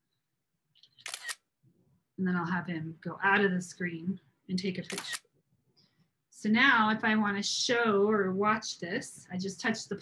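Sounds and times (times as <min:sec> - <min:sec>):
camera shutter double click: 0:01.0 - 0:01.4, 0:04.9 - 0:05.2.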